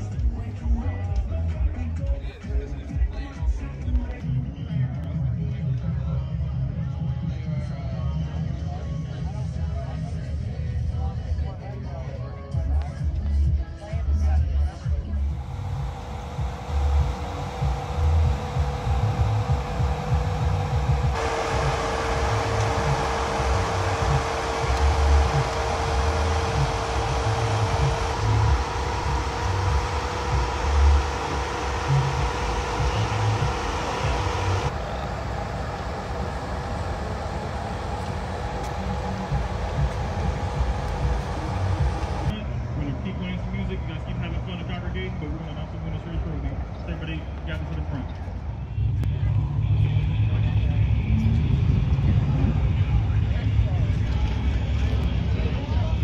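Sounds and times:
indistinct voices: 0:14.9 - 0:56.0
steady hum: 0:15.0 - 0:42.4.

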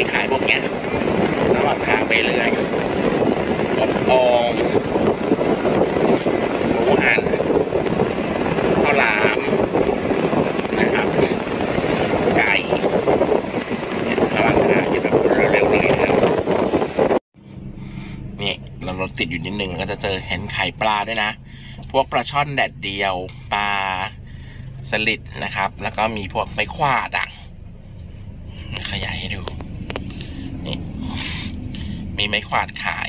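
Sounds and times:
car cabin road and wind rumble: 0:00.0 - 0:33.0.

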